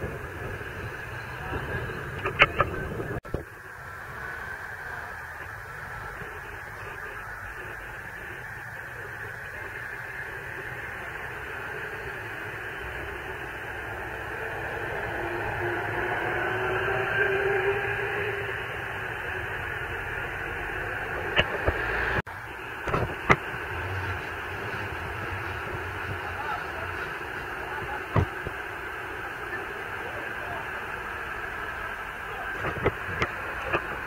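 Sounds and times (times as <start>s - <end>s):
vehicles moving through traffic: 0.0s - 34.0s.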